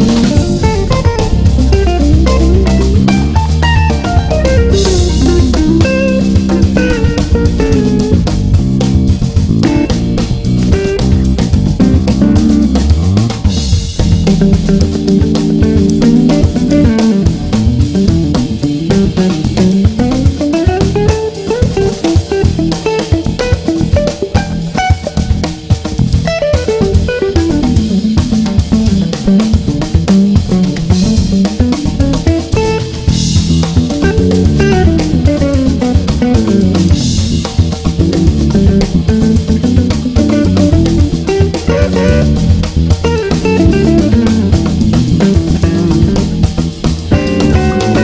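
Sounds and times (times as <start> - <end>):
electric guitar single-note lines: 0.0 - 46.5, 47.1 - 48.0
bass guitar: 0.0 - 48.0
drum kit steady beat: 0.0 - 48.0.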